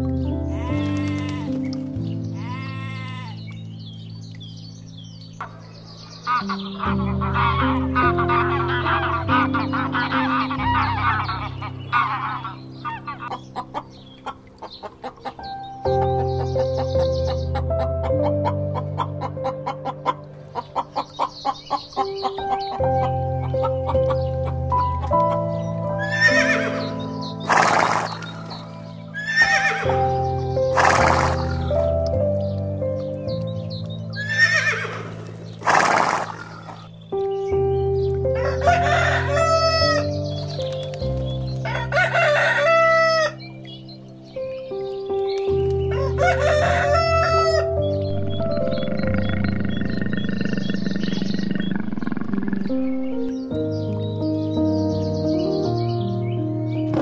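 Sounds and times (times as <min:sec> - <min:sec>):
background music: 0:00.0 - 0:57.0
chickens squawking: 0:06.0 - 0:31.9, 0:34.1 - 0:37.0, 0:38.3 - 0:40.3, 0:41.6 - 0:43.5, 0:45.9 - 0:53.1
rooster crowing: 0:38.4 - 0:40.1, 0:41.6 - 0:43.4, 0:45.9 - 0:49.1.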